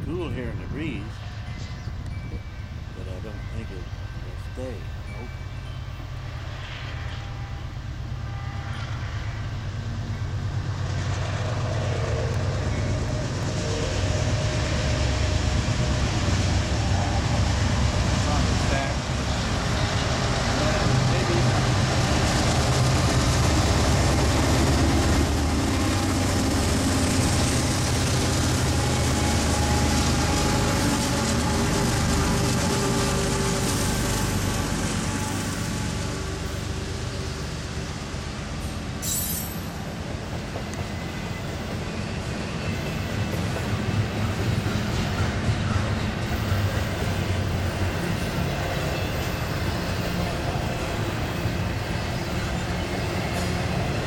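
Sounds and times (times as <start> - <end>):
diesel locomotives running: 0.0 - 54.0
freight cars rolling on rails: 8.8 - 54.0.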